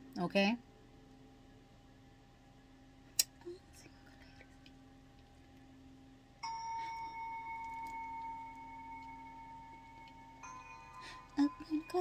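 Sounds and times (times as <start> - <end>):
bell-like chime ringing: 6.4 - 12.0.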